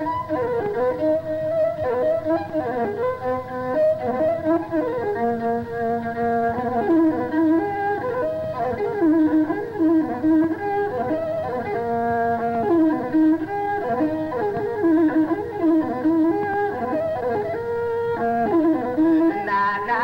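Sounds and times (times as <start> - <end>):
bowed one-string fiddle melody: 0.0 - 20.0.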